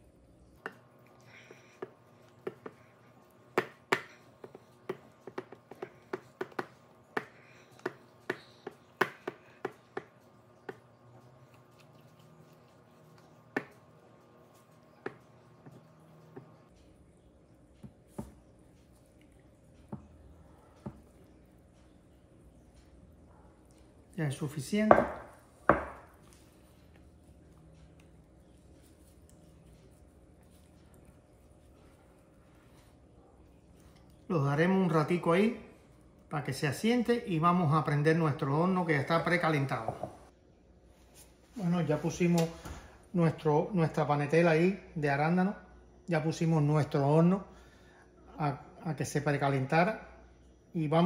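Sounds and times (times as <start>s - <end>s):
knocks on bowl: 24.9s - 26.1s.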